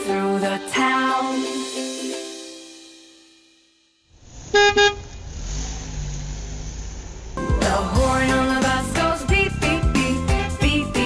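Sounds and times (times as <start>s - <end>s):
electronic toy horn beeps: 4.5s - 5.0s.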